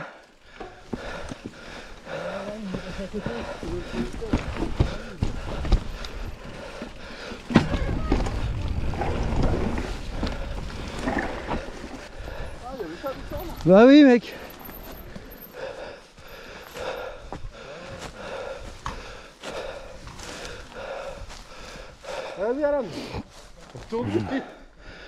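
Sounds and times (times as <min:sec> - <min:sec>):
bike frame rattling: 0:00.5 - 0:12.2
wind on microphone: 0:07.6 - 0:11.6.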